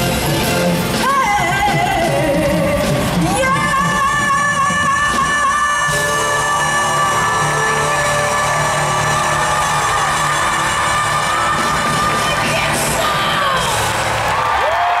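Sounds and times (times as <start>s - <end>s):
band playing live: 0.0s - 15.0s
crowd cheering and whooping: 5.9s - 15.0s.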